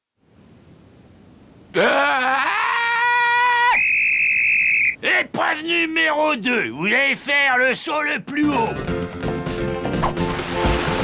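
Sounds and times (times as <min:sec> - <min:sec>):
cartoon character screaming: 0:01.8 - 0:03.8.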